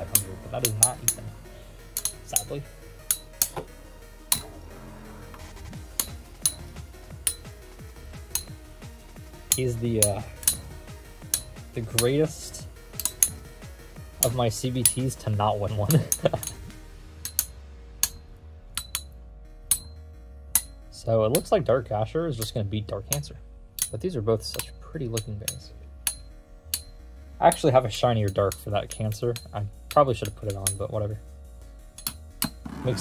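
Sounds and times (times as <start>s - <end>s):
background music: 0.0s - 33.0s.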